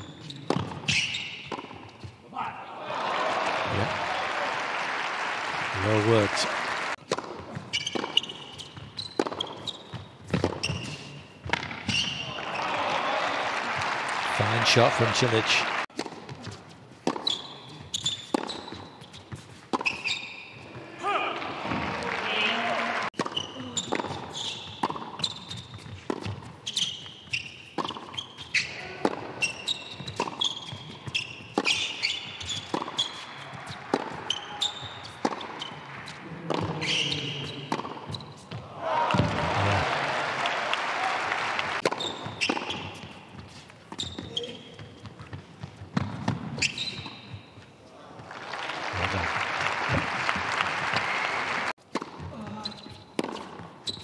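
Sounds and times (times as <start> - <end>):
tennis ball bouncing: 0.5 - 2.2, 7.0 - 12.2, 15.9 - 20.2, 23.2 - 39.7, 41.8 - 47.5, 51.8 - 54.0
crowd applause: 2.8 - 7.0, 12.3 - 15.9, 21.4 - 23.1, 38.8 - 41.8, 48.2 - 51.7
tennis racket striking ball: 7.0 - 12.1, 15.9 - 17.4, 18.3 - 20.1, 23.2 - 26.6, 27.8 - 28.2, 29.0 - 37.1, 37.7 - 39.3, 41.8 - 44.3, 51.8 - 52.4, 53.2 - 53.7.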